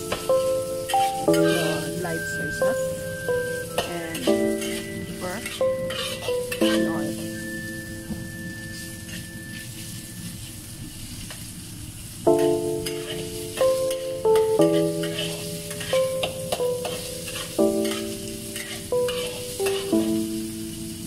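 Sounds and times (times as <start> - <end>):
background music with chords: 0.0 - 9.6, 12.3 - 21.0
food sizzling in a wok: 0.0 - 21.0
metal spatula scraping wok: 0.9 - 2.3, 3.7 - 7.6, 12.4 - 20.0.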